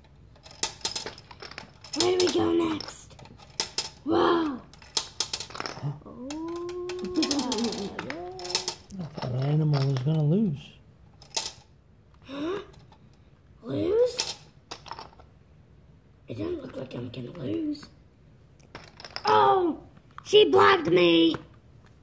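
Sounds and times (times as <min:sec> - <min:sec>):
plastic checkers clicking into grid: 0:00.3 - 0:04.0, 0:04.7 - 0:10.4, 0:11.2 - 0:11.7
person humming and singing tones: 0:05.9 - 0:08.8.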